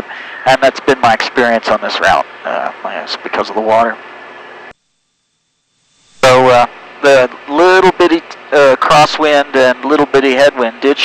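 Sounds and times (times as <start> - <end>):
aircraft cockpit hiss: 3.8 - 10.0.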